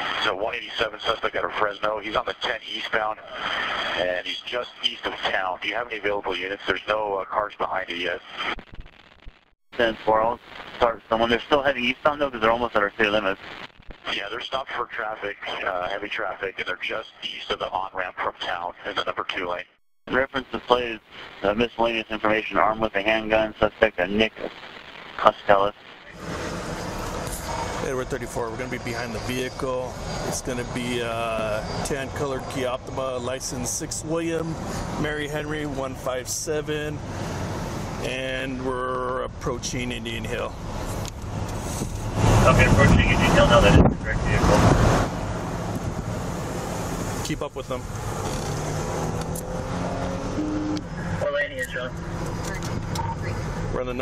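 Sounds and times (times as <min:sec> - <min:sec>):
radio voice: 0:00.0 - 0:08.6, 0:09.8 - 0:13.4, 0:14.0 - 0:26.2, 0:27.3 - 0:37.0, 0:38.0 - 0:40.6, 0:42.3 - 0:44.8, 0:47.2 - 0:47.8, 0:50.8 - 0:54.0
road and engine noise in car: 0:26.2 - 0:32.6, 0:36.8 - 0:38.4, 0:39.5 - 0:54.0.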